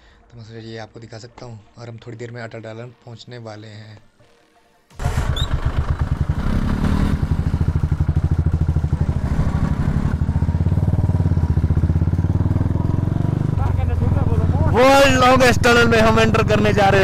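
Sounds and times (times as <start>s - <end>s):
motorcycle engine running: 5.0s - 17.0s.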